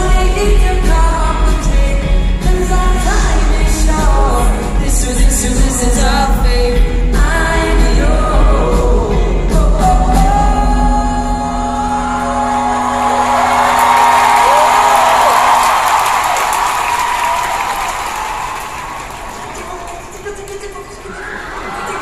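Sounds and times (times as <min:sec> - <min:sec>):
live band playing chords: 0:00.0 - 0:18.2
crowd cheering and screaming: 0:12.2 - 0:20.1, 0:21.1 - 0:22.0.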